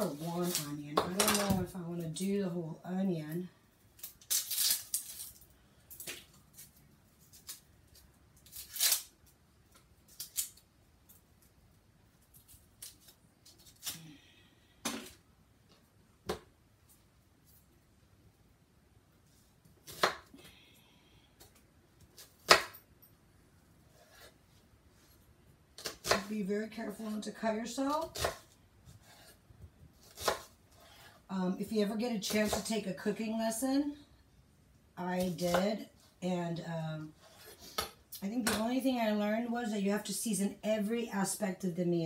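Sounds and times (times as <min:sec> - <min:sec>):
onion skin crackling and rustling: 0:03.8 - 0:14.1.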